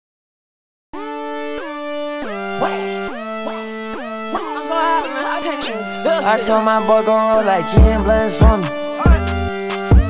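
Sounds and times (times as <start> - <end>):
synth melody with sliding notes: 1.0 - 10.0.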